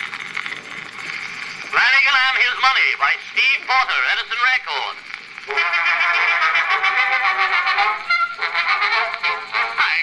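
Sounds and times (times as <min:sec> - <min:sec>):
tinny orchestral phonograph recording: 0:00.0 - 0:10.0.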